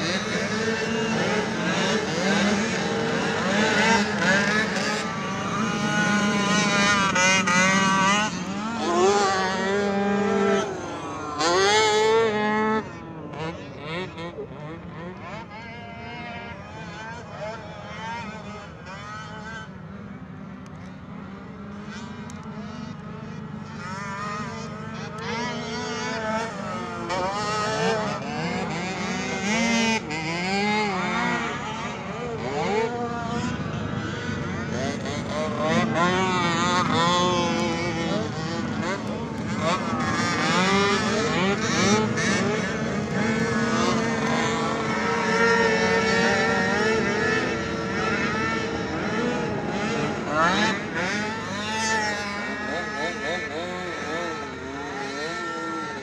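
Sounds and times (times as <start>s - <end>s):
small engine revving: 0.0s - 56.0s.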